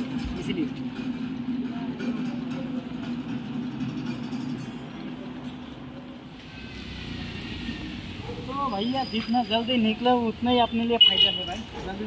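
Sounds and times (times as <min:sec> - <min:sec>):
hissy outdoor ambience: 0:00.0 - 0:12.0.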